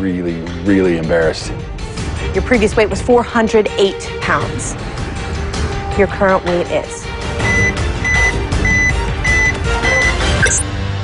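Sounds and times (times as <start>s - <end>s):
dramatic suspense music: 0.0s - 11.0s
short high electronic beeps: 7.5s - 10.6s.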